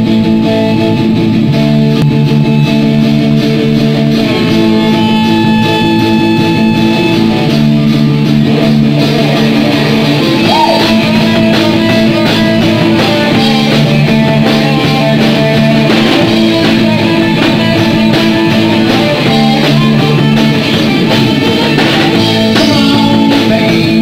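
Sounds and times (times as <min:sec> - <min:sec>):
live rock band playing: 0:00.0 - 0:24.0.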